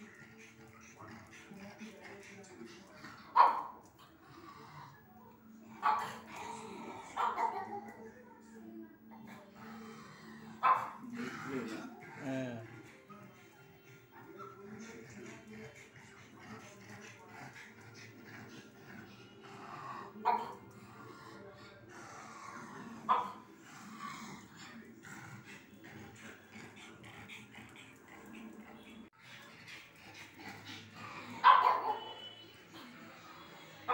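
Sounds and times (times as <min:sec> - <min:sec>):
dog barking: 0:03.3 - 0:03.8, 0:05.8 - 0:06.2, 0:07.2 - 0:07.8, 0:10.6 - 0:11.0, 0:20.2 - 0:20.6, 0:23.1 - 0:23.4, 0:31.4 - 0:32.4.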